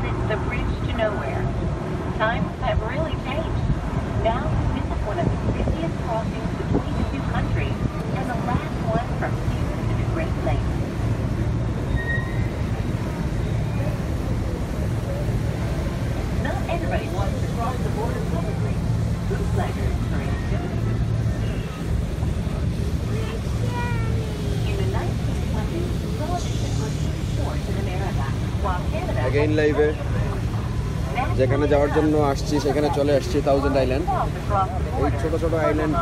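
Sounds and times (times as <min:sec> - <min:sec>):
boat engine droning: 0:00.0 - 0:36.0
faint passengers' voices: 0:00.0 - 0:36.0.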